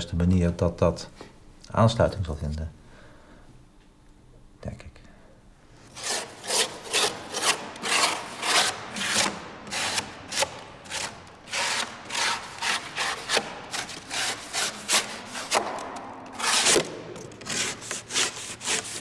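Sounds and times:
blade rasping on foam: 5.9s - 19.0s.

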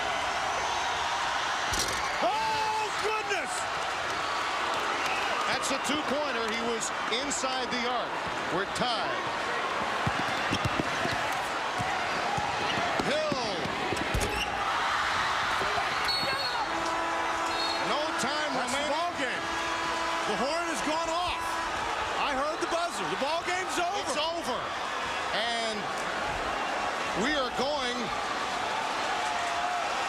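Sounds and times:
arena crowd noise: 0.0s - 30.0s
sneakers squeaking: 9.8s - 14.6s, 15.6s - 16.7s
game horn: 16.1s - 22.6s.

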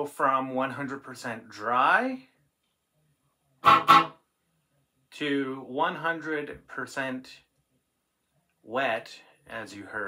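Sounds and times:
electric guitar chord strums: 3.6s - 4.1s.

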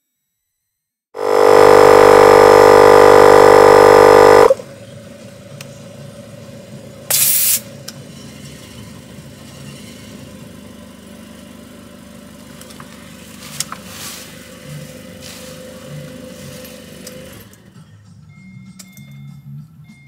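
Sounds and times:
tire inflator droning: 1.2s - 4.7s
short hiss of air: 7.1s - 7.7s.

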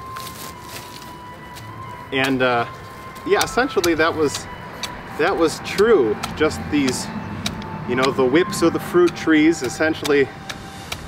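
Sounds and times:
rake scraping through mulch: 0.0s - 7.2s.

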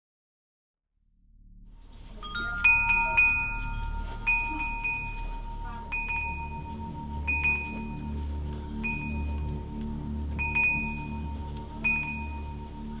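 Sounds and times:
low rumble: 1.0s - 13.0s
metal wind chime ringing: 2.1s - 13.0s.

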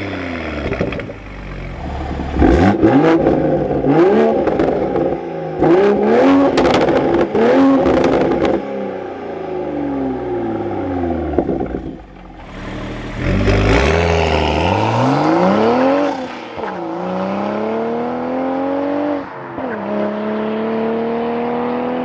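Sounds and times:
car accelerating away: 0.0s - 8.9s, 9.5s - 22.0s
car engine revving: 0.0s - 22.0s.

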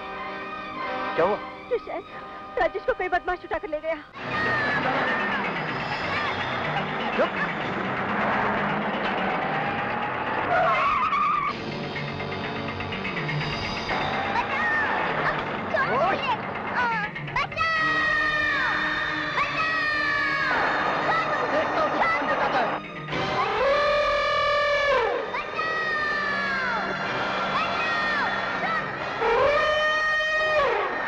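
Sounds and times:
elephant trumpeting: 27.8s - 31.0s.

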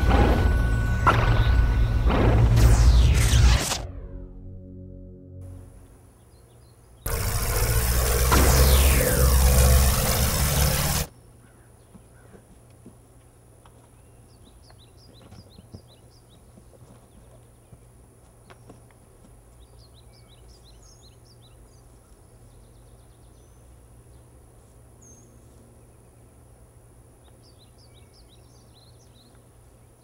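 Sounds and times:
falling whistle: 0.0s - 3.7s
rocket-like rushing roar: 0.0s - 4.2s, 7.1s - 11.1s.

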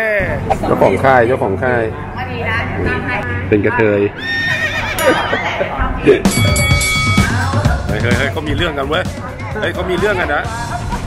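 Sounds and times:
horse whinny: 4.2s - 5.5s.

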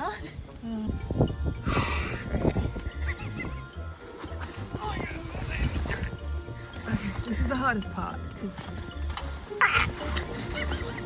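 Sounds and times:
music with steady bass beat: 0.9s - 11.0s.

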